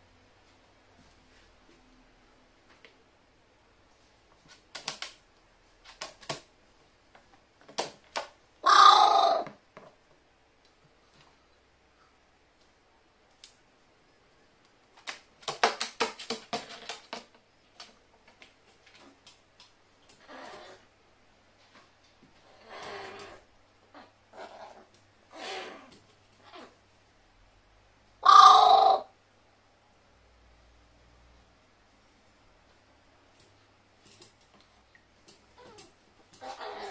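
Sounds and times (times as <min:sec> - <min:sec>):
crow calling: 0:08.6 - 0:09.5, 0:28.2 - 0:29.1.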